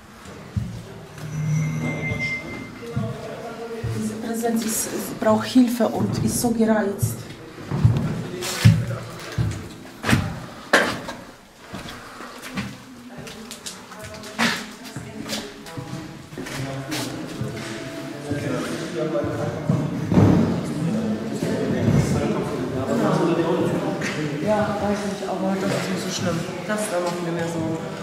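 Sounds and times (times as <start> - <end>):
faint music or voices: 0.0 - 28.0
loud knocks echoing in empty room: 19.7 - 20.7.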